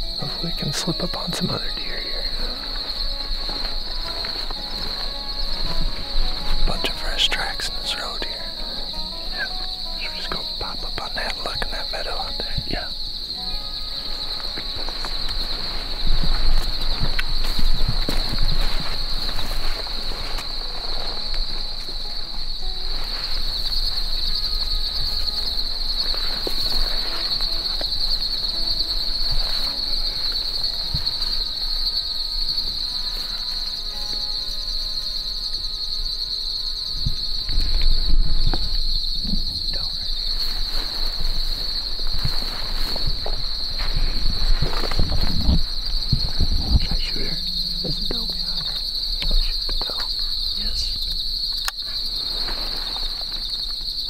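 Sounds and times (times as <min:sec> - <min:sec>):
crickets and insects trilling: 0:00.0 - 0:54.0
low thumps and rustles: 0:02.3 - 0:06.9, 0:13.4 - 0:31.7, 0:37.0 - 0:54.0.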